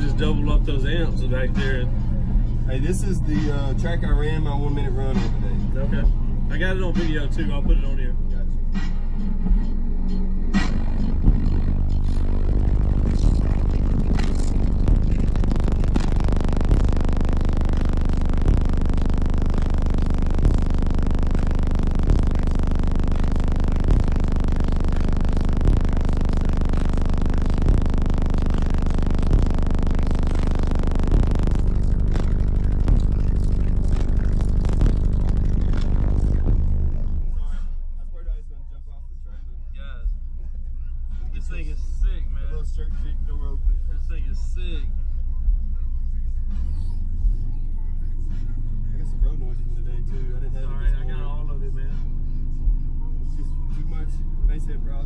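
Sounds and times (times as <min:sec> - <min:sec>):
bass-heavy music through subwoofers: 0:00.0 - 0:55.0.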